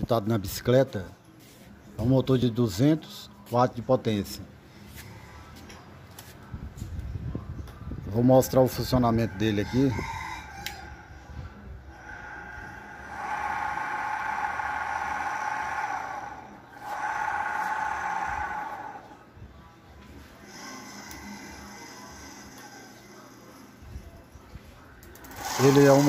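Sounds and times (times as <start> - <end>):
electric bicycle motor whine: 25.2 - 26.0.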